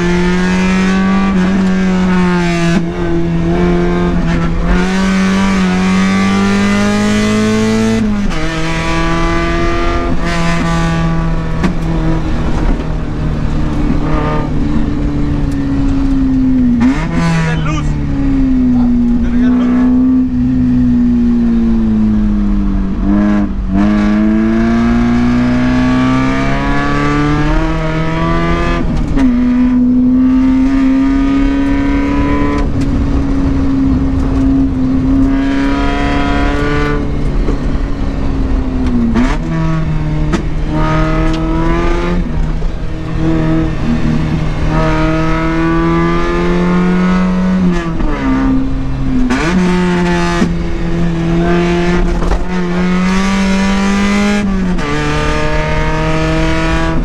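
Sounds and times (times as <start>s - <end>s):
car engine accelerating: 0.0s - 57.0s
tyre and road noise: 0.0s - 57.0s.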